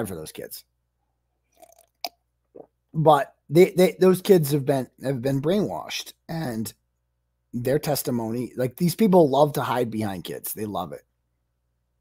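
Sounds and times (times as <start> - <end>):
man gulping water: 1.5 - 3.0.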